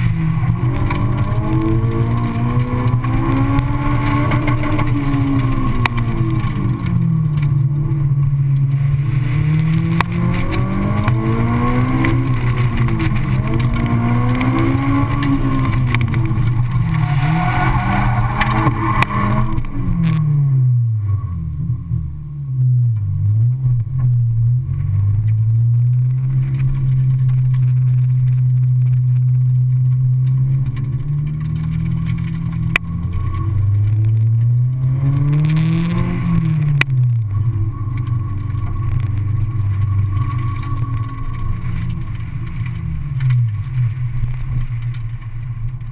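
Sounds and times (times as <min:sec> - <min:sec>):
car engine revving: 0:00.0 - 0:22.2, 0:23.0 - 0:45.9.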